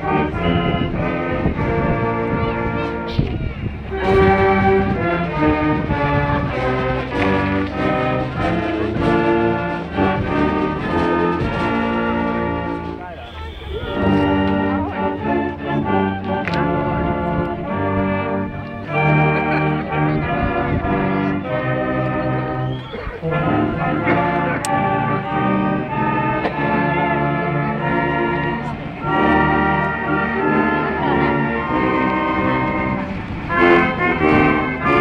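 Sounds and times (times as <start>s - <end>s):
drums: 0.0s - 13.2s
brass band playing: 0.0s - 35.0s.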